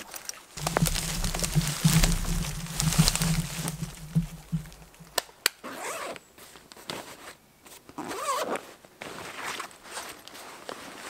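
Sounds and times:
zipper pulled: 8.0s - 8.6s.

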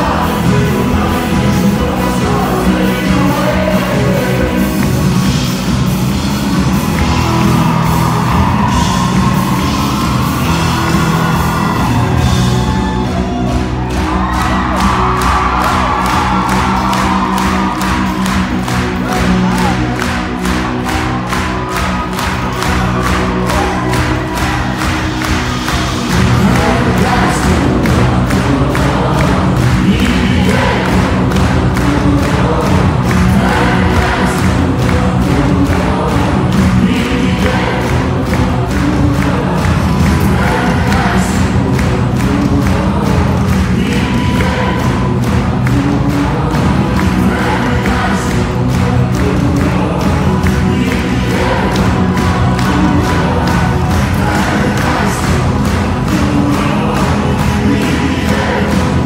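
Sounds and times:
man singing lead: 0.0s - 5.7s, 26.0s - 59.0s
crowd noise: 0.0s - 59.0s
live pop-rock band: 0.0s - 59.0s.

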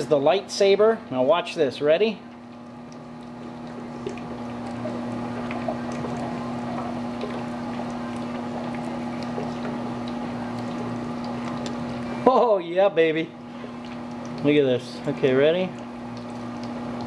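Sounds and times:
liquid bubbling: 2.1s - 17.0s.

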